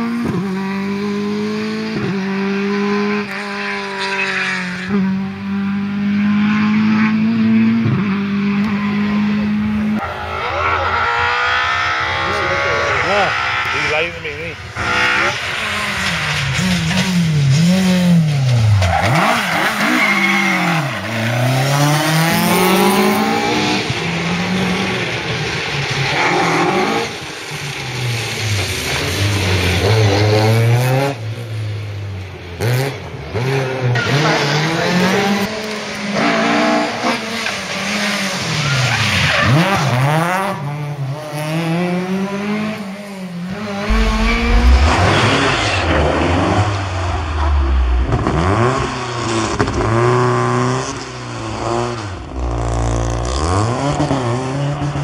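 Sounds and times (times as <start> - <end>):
rally car engine revving: 0.0 - 31.8, 32.6 - 55.0.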